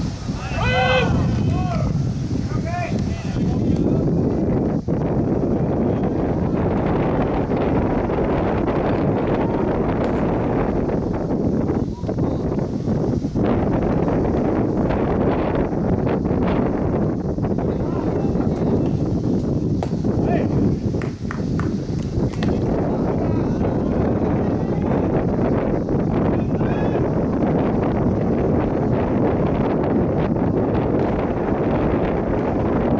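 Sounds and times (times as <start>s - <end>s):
wind buffeting microphone: 0.0s - 32.9s
sharp clicks or claps: 21.0s - 22.7s.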